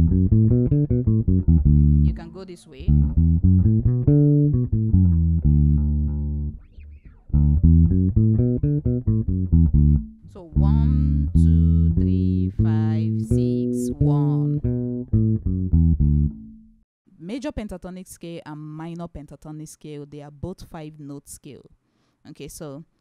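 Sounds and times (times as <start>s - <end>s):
electric bass guitar plucked notes: 0.0s - 16.8s.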